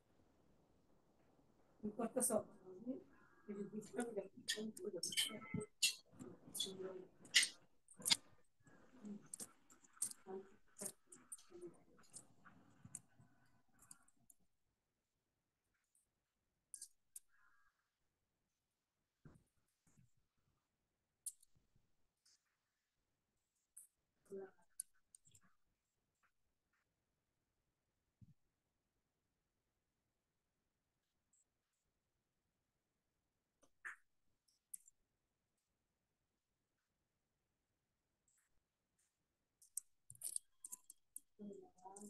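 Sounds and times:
faint clicks and ticks: 3.1 - 14.5, 15.7 - 17.8, 21.2 - 22.7, 23.5 - 26.9, 33.6 - 35.1, 38.2 - 42.0.

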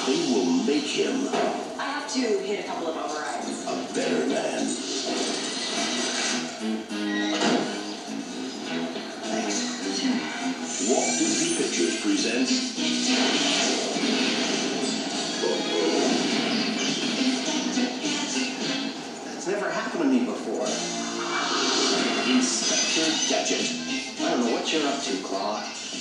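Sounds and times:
trailer music from television: 0.0 - 26.0
dialogue: 0.2 - 5.0
crash: 13.0 - 17.4.

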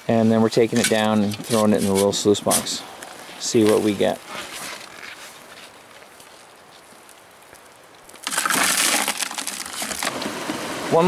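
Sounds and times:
soil crunching on mesh screen: 0.1 - 11.0
shovel scooping soil: 0.2 - 2.8, 8.2 - 10.8.

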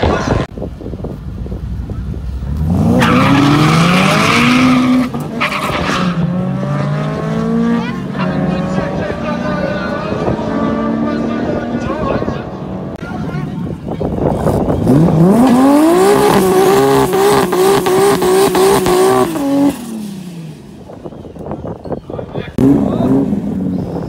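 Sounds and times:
drag car engines revving: 1.2 - 21.8, 22.5 - 24.0.

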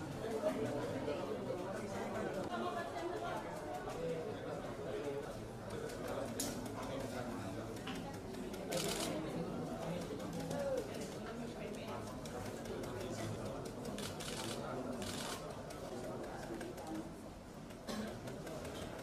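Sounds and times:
background chatter of voices: 0.0 - 19.0.

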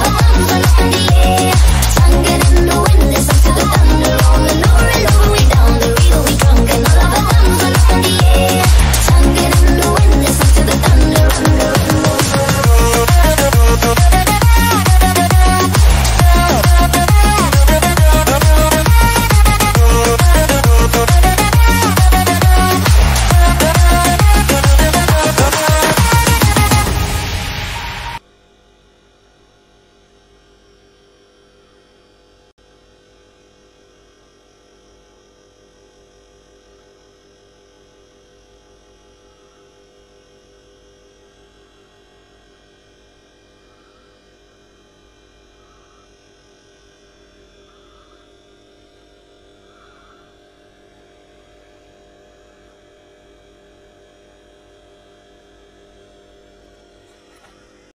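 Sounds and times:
electronic dance music: 0.0 - 28.2.

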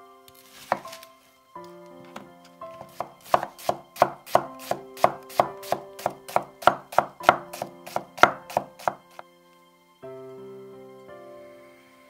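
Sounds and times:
knife strikes on cutting board: 2.8 - 9.2.

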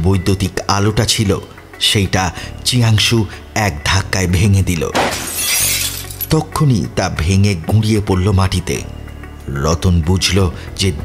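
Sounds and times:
light bulb glass shattering: 5.0 - 6.4.

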